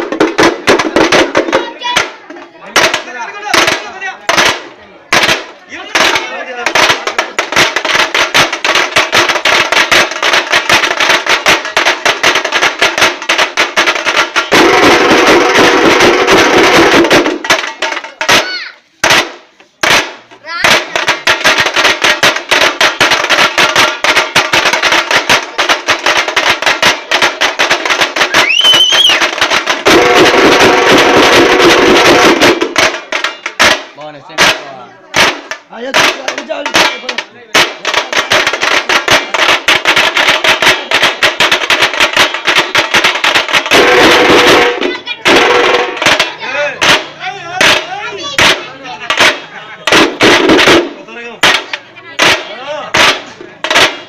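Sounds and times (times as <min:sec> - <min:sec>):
fast continuous drumming: 0:00.0 - 0:54.0.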